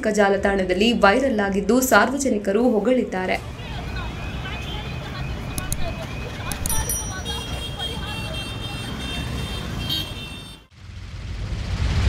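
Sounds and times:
motor scooters running: 0:03.4 - 0:10.7.

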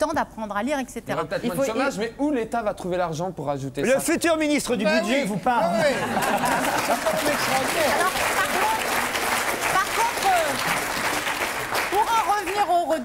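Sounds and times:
laughter: 0:05.7 - 0:07.6
audience applauding: 0:06.0 - 0:13.0.

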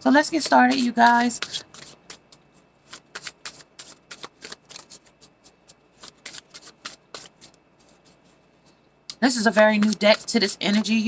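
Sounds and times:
cards being shuffled: 0:00.3 - 0:08.4, 0:09.7 - 0:10.9.

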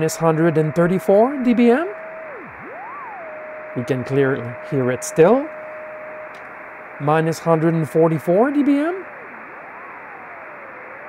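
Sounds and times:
faint sliding beat tone: 0:00.0 - 0:11.0
radio receiver hiss: 0:00.0 - 0:11.0.

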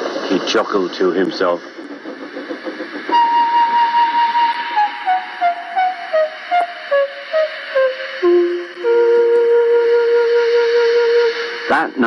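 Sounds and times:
background music with pulsing beat: 0:00.0 - 0:12.0.

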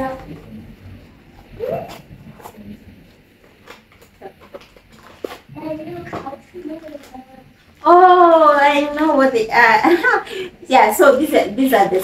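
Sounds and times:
faint voice: 0:01.5 - 0:02.8
plastic packaging crinkling: 0:03.5 - 0:05.5.

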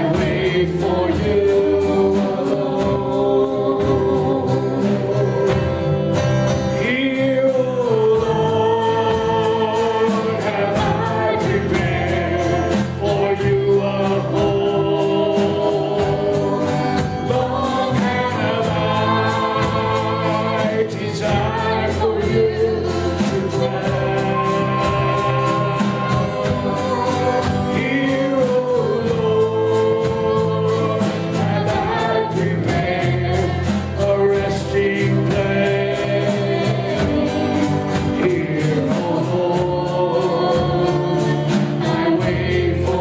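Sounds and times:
strummed acoustic guitar: 0:00.0 - 0:43.0
woman singing into microphone: 0:15.9 - 0:25.0, 0:36.2 - 0:43.0.

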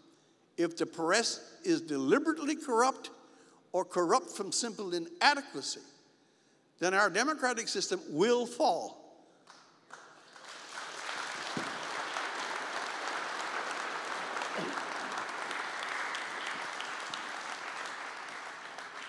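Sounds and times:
audience applauding: 0:09.5 - 0:19.0.

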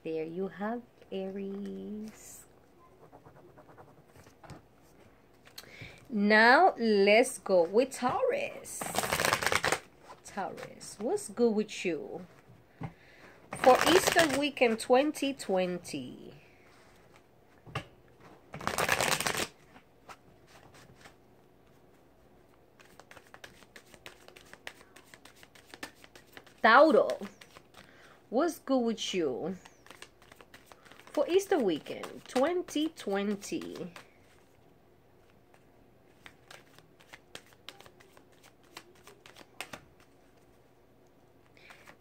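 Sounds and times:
cards being riffle-shuffled: 0:08.8 - 0:09.9, 0:13.5 - 0:14.8, 0:18.5 - 0:21.2, 0:22.8 - 0:28.0, 0:29.5 - 0:34.6, 0:35.5 - 0:40.6, 0:41.4 - 0:42.0.

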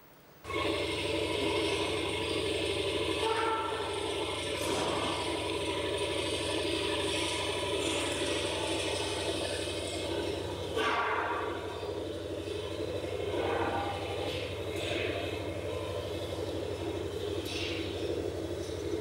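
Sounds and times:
mechanical hum and whirr: 0:00.0 - 0:19.0.

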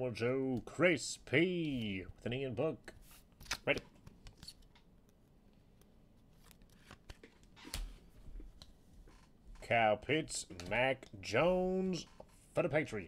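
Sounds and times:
cards and plastic sleeves rustling: 0:01.6 - 0:08.7.

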